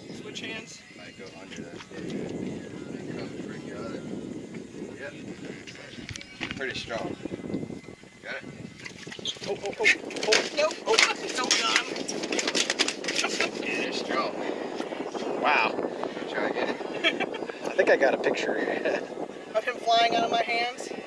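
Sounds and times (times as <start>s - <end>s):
people talking indistinctly: 0.0s - 21.0s.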